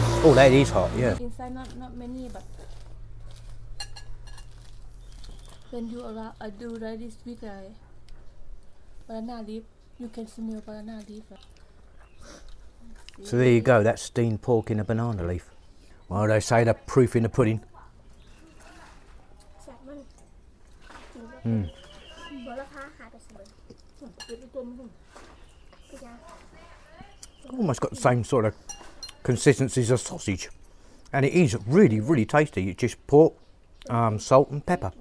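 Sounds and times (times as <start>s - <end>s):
leaf parcel being handled: 1.4s - 7.2s.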